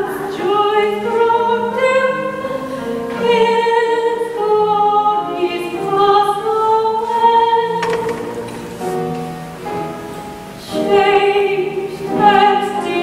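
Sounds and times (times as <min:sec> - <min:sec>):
woman singing slow song: 0:00.0 - 0:08.2, 0:10.6 - 0:13.0
piano accompaniment: 0:00.0 - 0:13.0.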